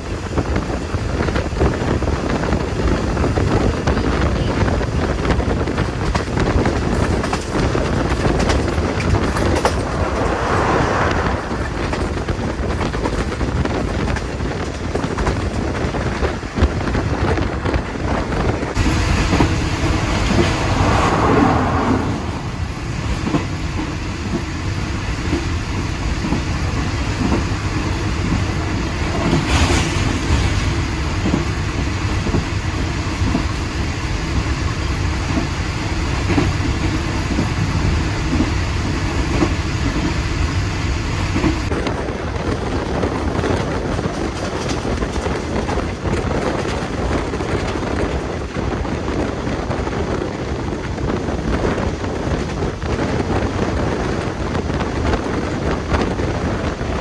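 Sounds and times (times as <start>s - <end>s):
train wheels on rail: 0.0s - 57.0s
air rushing past: 8.0s - 13.7s, 18.7s - 24.3s.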